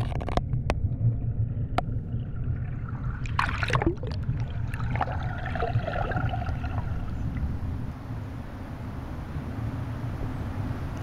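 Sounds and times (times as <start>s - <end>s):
sharp underwater clicks: 0.0s - 1.0s, 3.2s - 5.2s
underwater low rumble: 0.0s - 11.0s.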